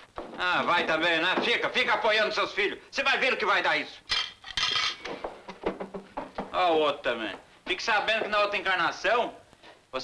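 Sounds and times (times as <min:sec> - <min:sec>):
cutlery and plates clinking: 0:04.1 - 0:05.8.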